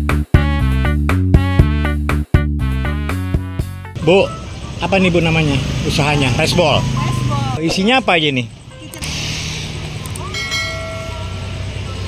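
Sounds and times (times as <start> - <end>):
traffic rumble: 4.0 - 12.0.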